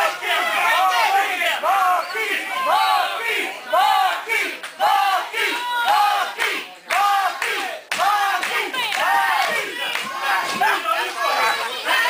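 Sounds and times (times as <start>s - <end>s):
crowd chanting: 0.0s - 12.0s.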